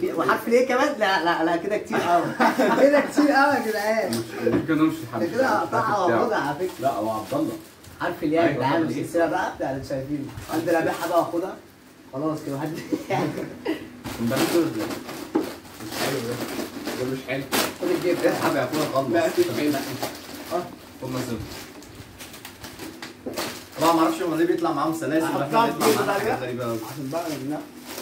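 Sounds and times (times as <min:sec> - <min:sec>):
plastic snack bag crinkling: 0:06.4 - 0:08.0, 0:14.2 - 0:24.6, 0:25.5 - 0:28.0
bag ripping open: 0:14.2 - 0:24.3.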